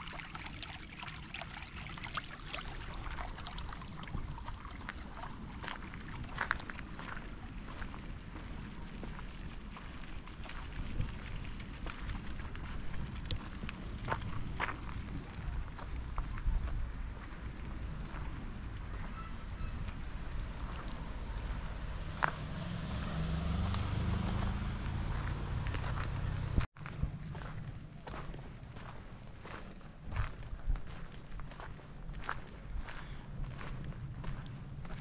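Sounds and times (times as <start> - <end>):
steady low rumble: 23.7 - 35.0.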